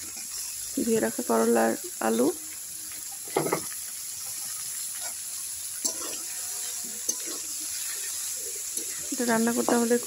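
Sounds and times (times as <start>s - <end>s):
hot oil sizzling in a wok: 0.0s - 10.0s.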